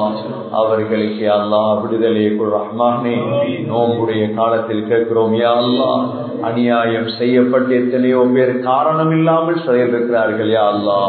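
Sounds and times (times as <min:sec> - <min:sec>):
man preaching into a microphone: 0:00.0 - 0:11.0.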